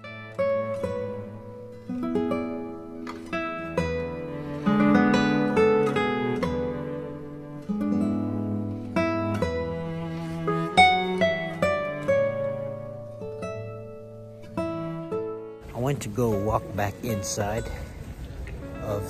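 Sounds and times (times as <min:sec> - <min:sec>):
plucked string instrument: 0:00.0 - 0:19.0.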